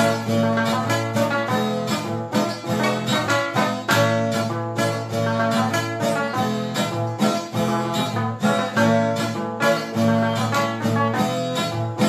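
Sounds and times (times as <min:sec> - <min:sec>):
plucked wooden guitar: 0:00.0 - 0:12.0.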